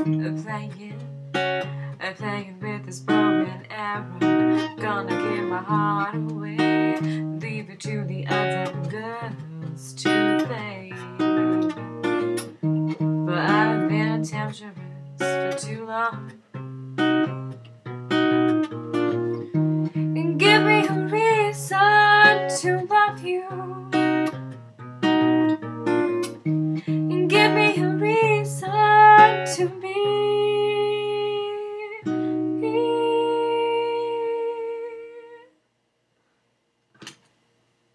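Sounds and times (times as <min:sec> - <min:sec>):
woman singing: 0:00.0 - 0:11.6, 0:13.1 - 0:16.4, 0:20.0 - 0:24.3, 0:26.8 - 0:35.6
acoustic guitar: 0:00.0 - 0:35.4.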